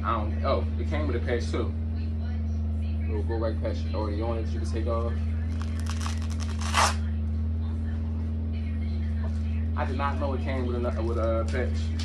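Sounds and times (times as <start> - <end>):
hook-and-loop patch ripping: 5.5 - 7.0.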